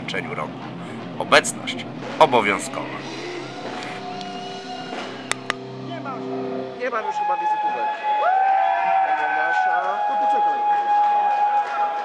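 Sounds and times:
electric guitar sustained chord: 0.4s - 7.0s.

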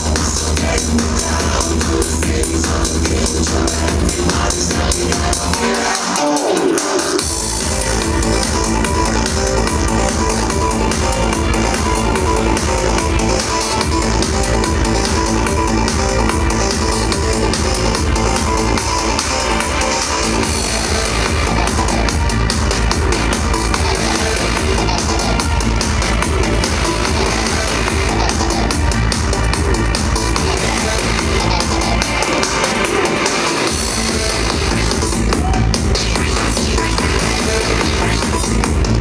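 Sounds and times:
psytrance music through club speakers: 0.0s - 39.0s.

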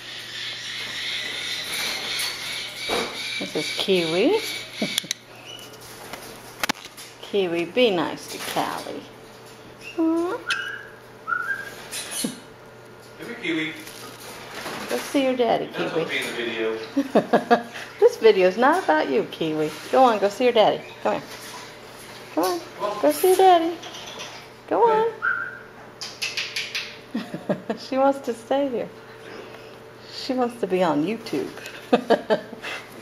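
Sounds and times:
parrot chirping: 0.0s - 5.8s, 9.8s - 12.5s.

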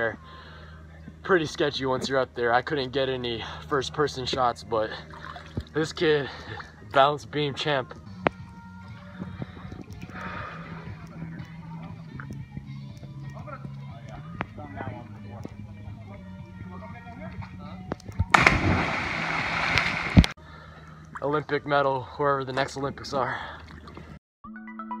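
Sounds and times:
background music with bass: 0.0s - 25.0s
person splashing into water: 18.2s - 20.4s.

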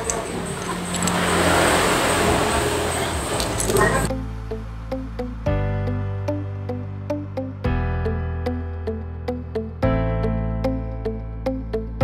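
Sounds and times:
road traffic rushing: 0.0s - 4.1s.

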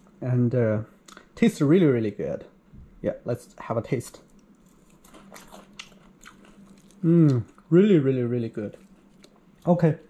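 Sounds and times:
crunching while chewing fried fish: 4.2s - 9.8s.

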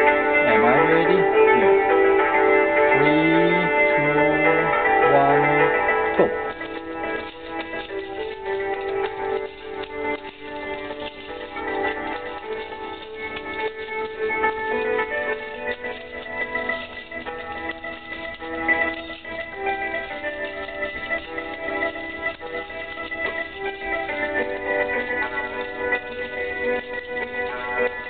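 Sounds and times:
instrumental background music: 0.0s - 28.0s.

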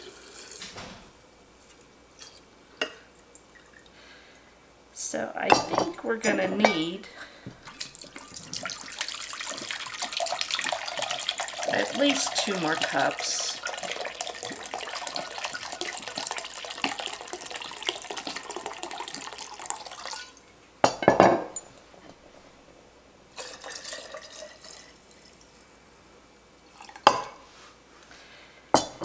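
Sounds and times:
liquid pouring into glass: 7.6s - 20.4s, 23.3s - 25.4s, 26.7s - 27.3s.

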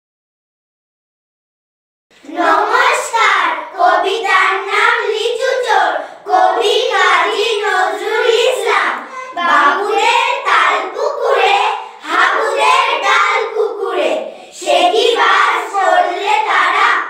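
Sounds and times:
girls reciting in unison: 2.2s - 17.0s.

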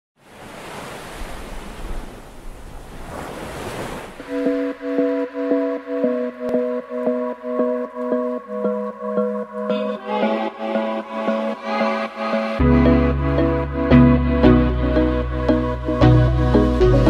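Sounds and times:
sea surf washing: 0.2s - 13.1s
music with pulsing chord: 4.2s - 17.0s.

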